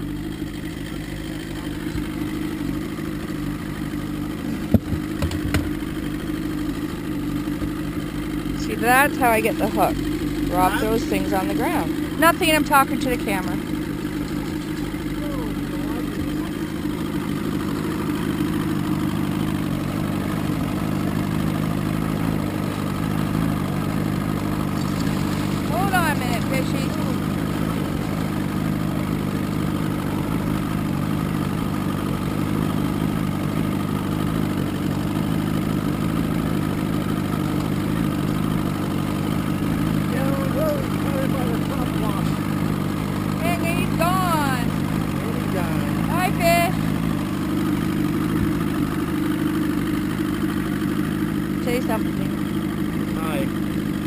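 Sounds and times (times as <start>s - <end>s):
boat motor droning: 0.0s - 54.0s.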